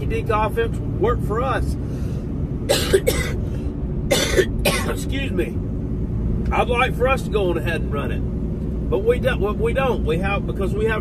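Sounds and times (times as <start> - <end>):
truck cab rumble: 0.0 - 11.0
man coughing: 2.7 - 3.5, 4.1 - 5.1.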